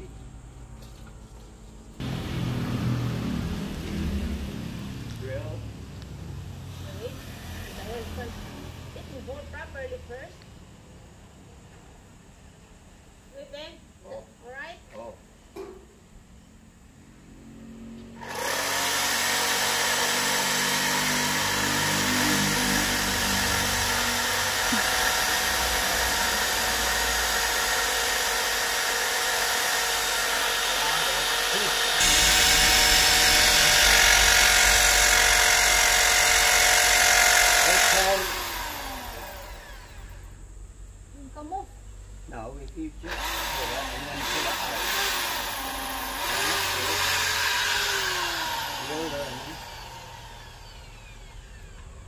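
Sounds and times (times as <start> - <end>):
electric drill boring: 18.2 - 40.4, 43.0 - 52.0.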